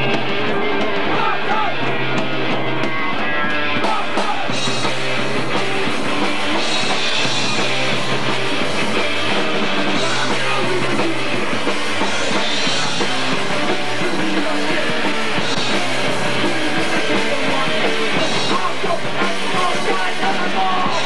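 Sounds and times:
punk rock band playing live: 0:00.0 - 0:21.0.

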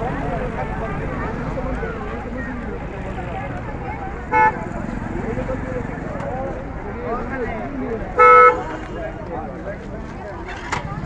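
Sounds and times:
crowd talking: 0:00.0 - 0:11.0
vehicle horn toot: 0:04.3 - 0:04.6, 0:08.2 - 0:09.2.

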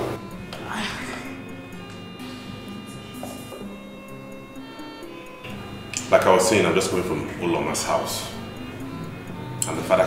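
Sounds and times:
sustained film music tones: 0:00.0 - 0:10.0.

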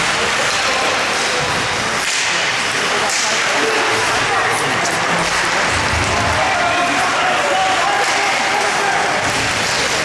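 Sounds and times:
spectators chatter: 0:00.0 - 0:10.0.

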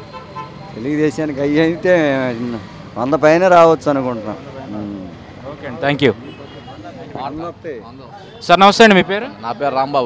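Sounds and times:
faint street noise: 0:00.0 - 0:10.0.

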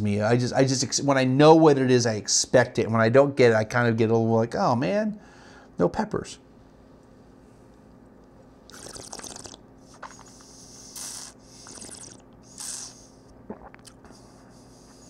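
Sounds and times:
wine slurping and swishing: 0:08.7 - 0:10.3, 0:11.0 - 0:12.8.

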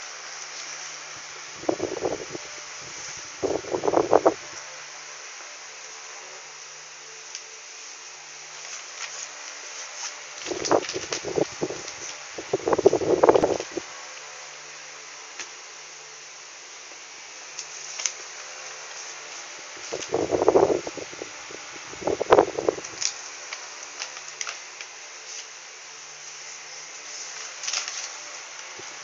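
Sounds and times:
fan whirring: 0:00.0 - 0:29.0.

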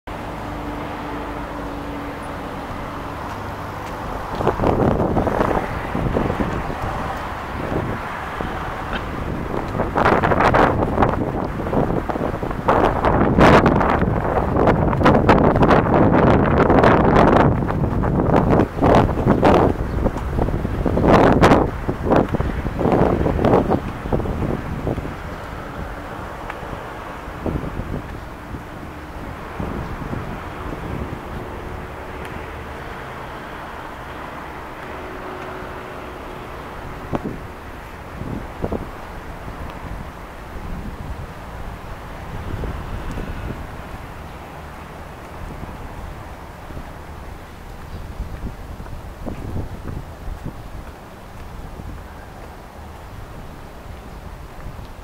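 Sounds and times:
wind buffeting microphone: 0:00.1 - 0:55.0.

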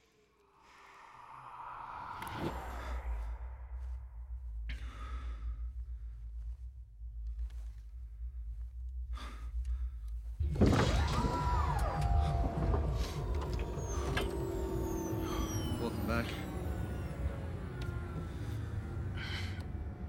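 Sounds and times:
man breathing: 0:00.2 - 0:10.4, 0:13.8 - 0:20.0
low rumble: 0:00.3 - 0:20.0
low machine hum: 0:02.0 - 0:20.0
falling electronic whistles and chirps: 0:11.1 - 0:19.4.

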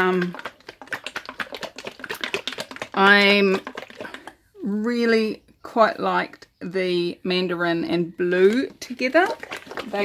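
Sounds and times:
plastic paint bottles shaken: 0:00.0 - 0:04.6, 0:08.2 - 0:10.0.

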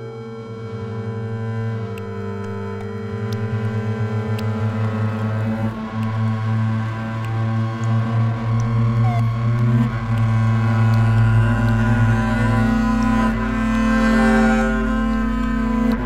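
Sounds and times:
deep low drone: 0:00.0 - 0:16.0
bowed double bass: 0:00.4 - 0:16.0
electronic sound: 0:05.6 - 0:12.6.

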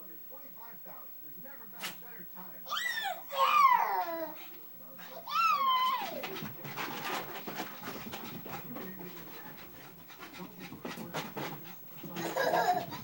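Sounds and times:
dog crying: 0:02.7 - 0:04.5, 0:05.1 - 0:06.3
dog panting quickly: 0:04.0 - 0:13.0.

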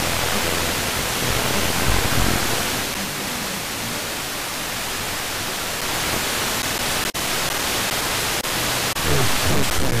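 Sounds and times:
low rumble: 0:00.0 - 0:04.5
radio static hiss: 0:00.0 - 0:10.0.

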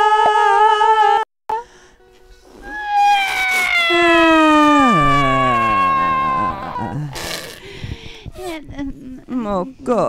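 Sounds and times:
sliding pitched tones: 0:02.4 - 0:08.7
held high tone: 0:02.6 - 0:07.6.

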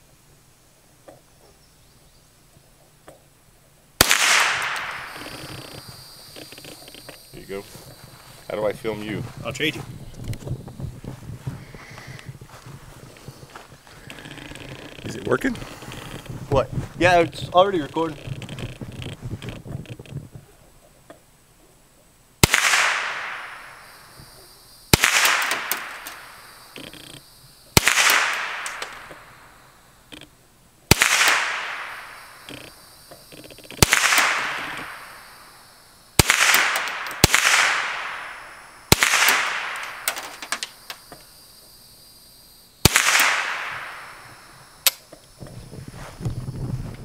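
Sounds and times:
rifle shots echoing: 0:04.0 - 0:05.9, 0:22.4 - 0:24.2, 0:24.9 - 0:26.7, 0:27.8 - 0:29.5, 0:30.9 - 0:32.7, 0:33.8 - 0:35.5, 0:36.2 - 0:40.7, 0:42.8 - 0:44.6.

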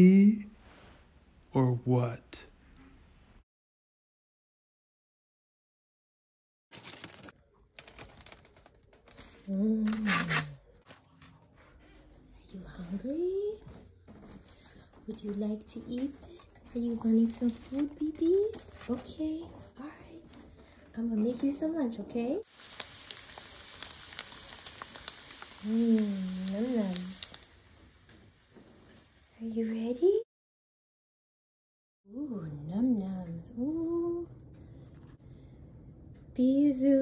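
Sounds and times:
plastic packaging crinkling: 0:06.7 - 0:11.2, 0:22.5 - 0:28.0
bacon sizzling in a pan: 0:22.4 - 0:29.9.

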